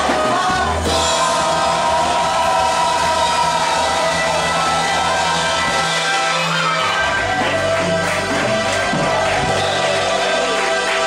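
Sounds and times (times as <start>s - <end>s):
choir singing through speakers: 0.0s - 11.0s
steady bass: 0.0s - 11.0s.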